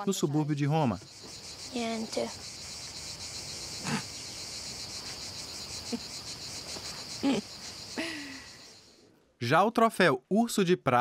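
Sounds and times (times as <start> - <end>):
insects chirring: 0.0 - 9.0.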